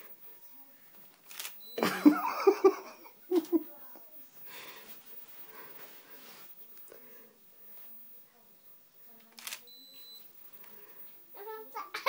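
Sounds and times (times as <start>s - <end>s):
high electronic camera beep: 9.4s - 10.2s.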